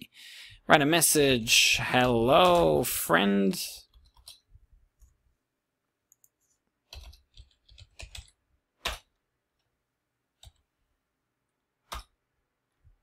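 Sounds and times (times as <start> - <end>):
keyboard keystrokes typing: 3.9 - 4.5, 6.1 - 9.1, 11.9 - 12.2.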